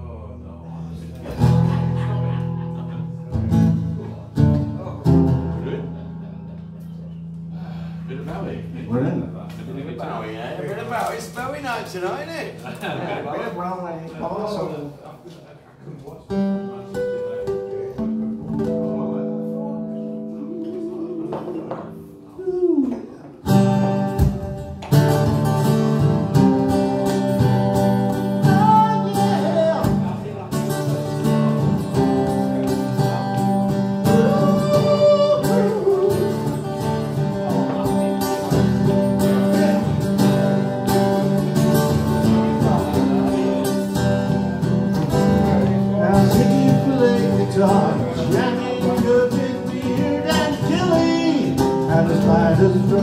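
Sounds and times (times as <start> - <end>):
man singing: 20.3 - 23.3, 28.4 - 30.4, 31.2 - 38.6, 45.0 - 53.0.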